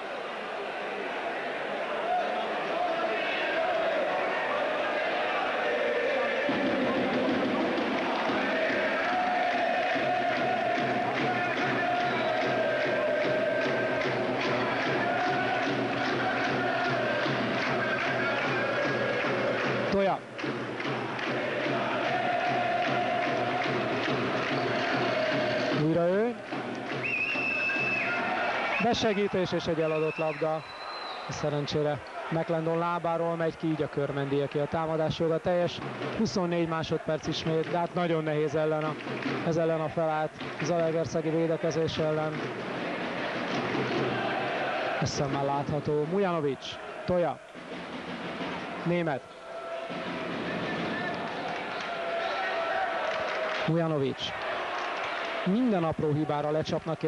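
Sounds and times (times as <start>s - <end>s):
crowd chanting in unison: 0.0s - 20.0s, 20.6s - 29.9s, 39.1s - 56.6s
steady rhythmic beat: 6.0s - 30.7s, 35.3s - 53.6s.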